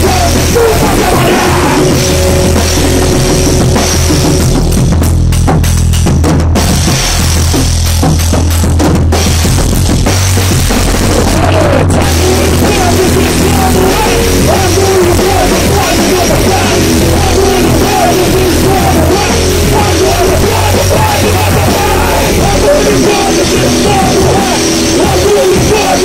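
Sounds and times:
electric guitar: 0.0s - 5.0s, 10.8s - 26.0s
drum kit pounding: 0.0s - 26.0s.

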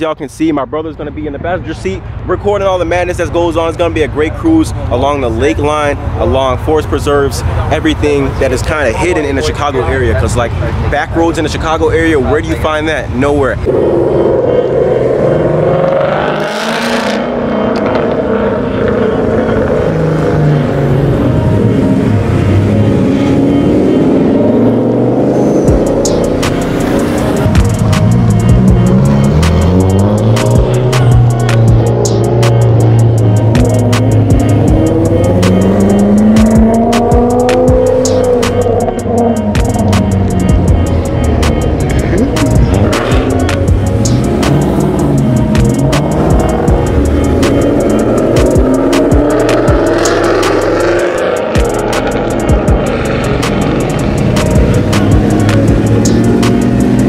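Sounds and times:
car engines revving: 0.0s - 57.0s
background music with a beat: 21.6s - 57.0s.

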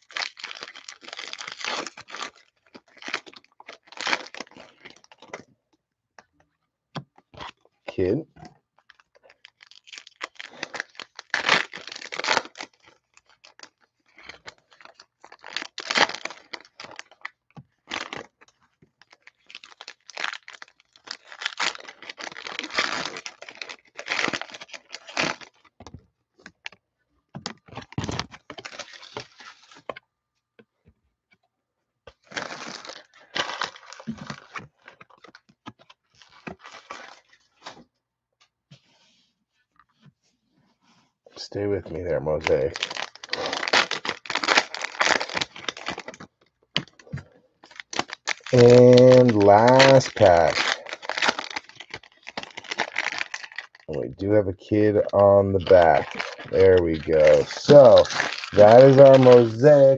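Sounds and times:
foil wrappers tearing and crinkling: 0.0s - 5.4s, 8.8s - 25.7s, 27.5s - 29.9s, 32.2s - 37.8s, 42.4s - 54.1s, 54.7s - 59.9s.

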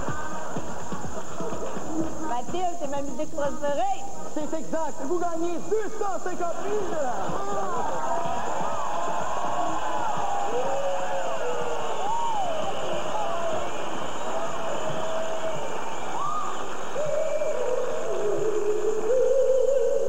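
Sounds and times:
music: 0.0s - 20.0s
people whooping and cheering: 6.2s - 20.0s.

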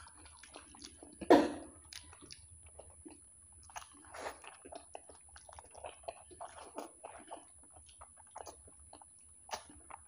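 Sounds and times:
chewing soft food: 0.0s - 10.0s.

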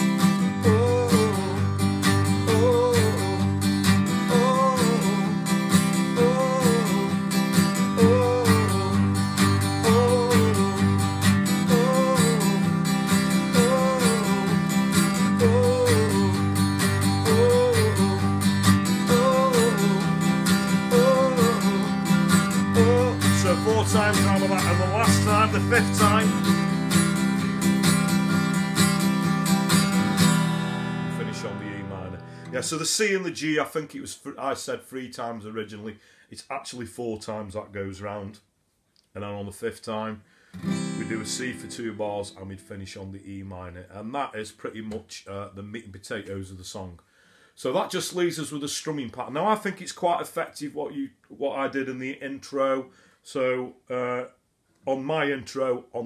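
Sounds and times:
acoustic guitar strumming: 0.0s - 33.1s, 40.6s - 42.9s.

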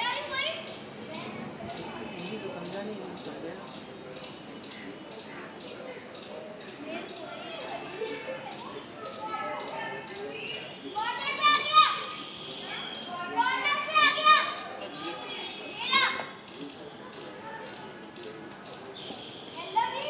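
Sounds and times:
children chattering excitedly: 0.0s - 20.0s
child's sharp cry: 11.0s - 12.3s, 13.3s - 14.7s.

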